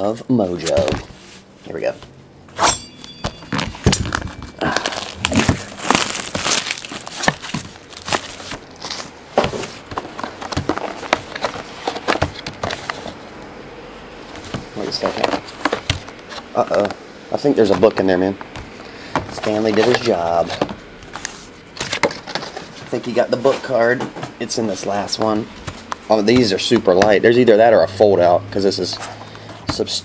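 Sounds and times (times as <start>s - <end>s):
plastic wrap crinkling and tearing: 3.5s - 13.2s.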